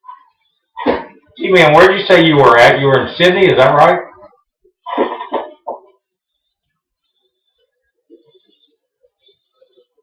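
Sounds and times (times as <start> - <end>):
person coughing: 4.9 - 5.7.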